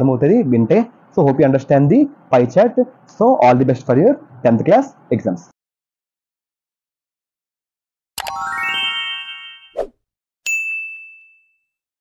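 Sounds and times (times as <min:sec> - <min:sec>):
button clicks: 0:08.2 - 0:08.5
rising chime notes: 0:08.2 - 0:09.8
high bell ding: 0:10.5 - 0:11.8.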